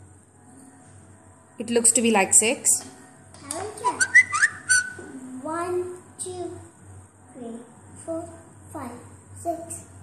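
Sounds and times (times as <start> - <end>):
person whistling: 4.0 - 5.0.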